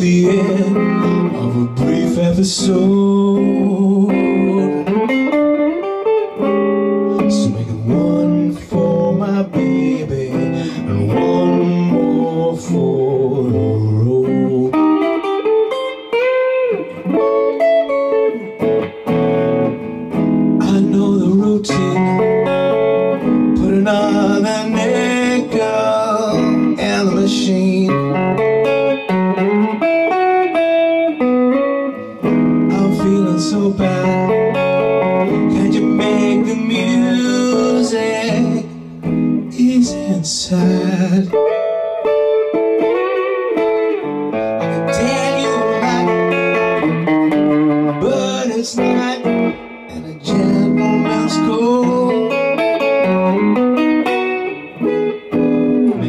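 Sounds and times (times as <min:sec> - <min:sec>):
bluesy electric guitar: 0:00.0 - 0:56.0.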